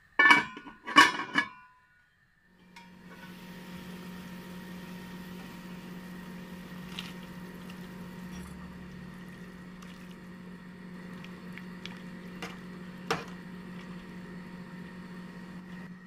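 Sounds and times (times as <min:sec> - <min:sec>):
low steady hum: 0:00.1 - 0:16.0
broth simmering with bubbling hiss: 0:02.9 - 0:16.0.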